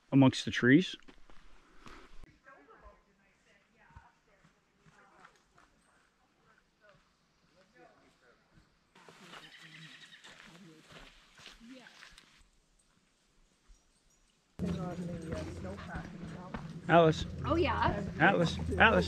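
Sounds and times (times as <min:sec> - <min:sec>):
distant group talking: 0:14.6 - 0:19.0.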